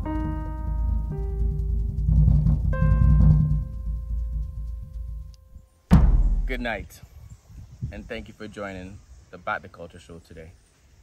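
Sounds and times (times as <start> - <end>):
long held musical notes: 0.0 - 5.8
deep low drum rumble: 0.0 - 6.8
sudden loud burst: 5.9 - 6.8.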